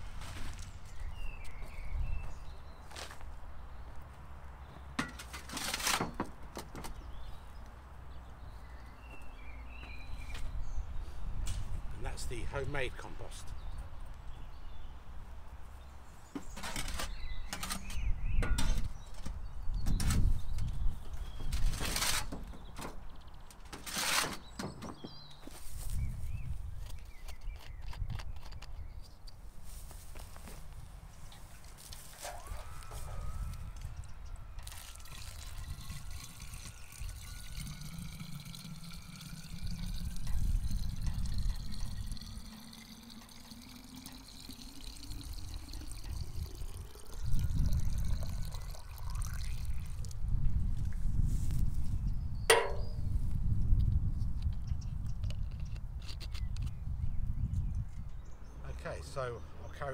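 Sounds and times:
sharp knocks and scrapes: 0:05.0 - 0:07.0, 0:16.4 - 0:19.3, 0:21.4 - 0:25.8, 0:52.5 - 0:53.0
water pouring into plastic bottle: 0:34.6 - 0:50.2.

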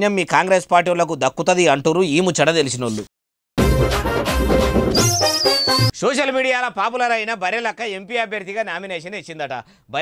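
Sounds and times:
high warbling whistle: 0:04.9 - 0:05.9.

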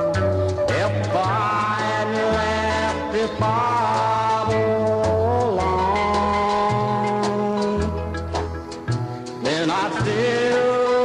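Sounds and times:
honky-tonk country instrumental: 0:00.0 - 0:11.0.

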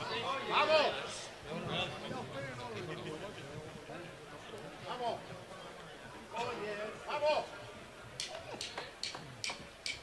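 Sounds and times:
drumsticks clicking together: 0:08.2 - 0:10.0.

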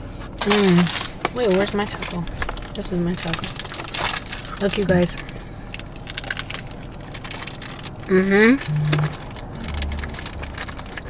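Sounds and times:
taco crunching when chewed: 0:00.2 - 0:11.0.

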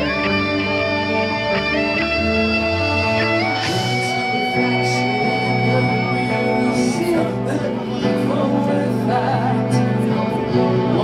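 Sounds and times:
electric guitar melody: 0:00.0 - 0:11.0
heavy metal band playing live: 0:00.0 - 0:11.0.

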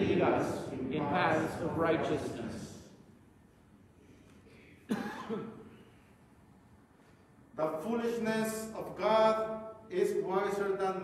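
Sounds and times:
person coughing: 0:04.8 - 0:05.8.

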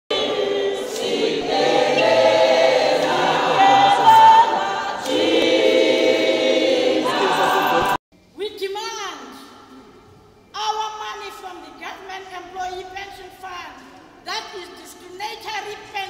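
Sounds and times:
crowd singing a protest song: 0:00.1 - 0:08.0.

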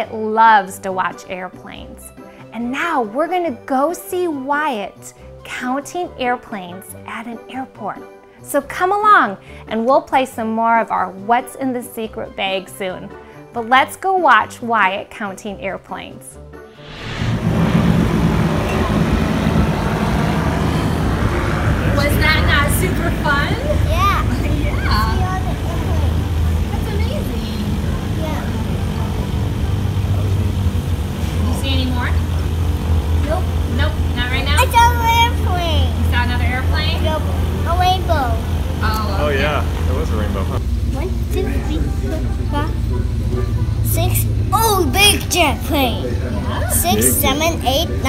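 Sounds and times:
aircraft engines rumbling: 0:16.8 - 0:48.0
child calling out: 0:44.5 - 0:45.2.

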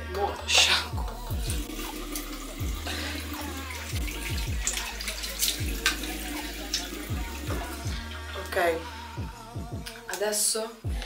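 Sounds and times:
music with deep bass beat: 0:00.0 - 0:11.0.

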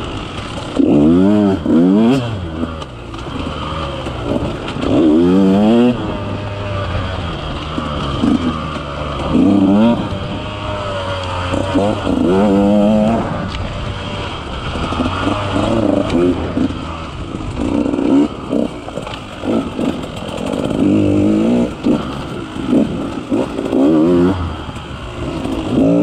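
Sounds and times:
motorcycle engine revving: 0:00.0 - 0:26.0.

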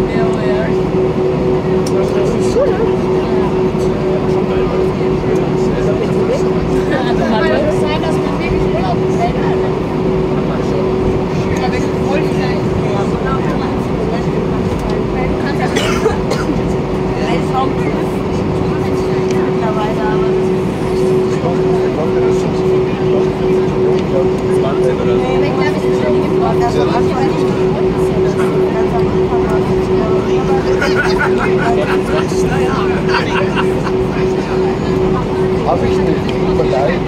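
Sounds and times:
airplane engines humming: 0:00.0 - 0:37.0
indistinct passenger voices: 0:00.0 - 0:37.0.

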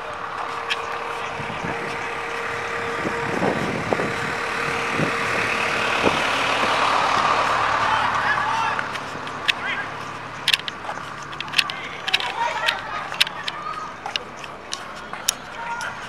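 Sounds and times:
truck engine running: 0:00.0 - 0:16.0.

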